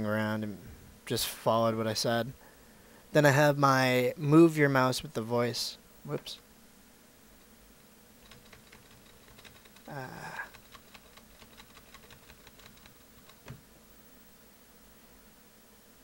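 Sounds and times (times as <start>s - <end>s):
faint keyboard typing: 8.2s - 13.6s.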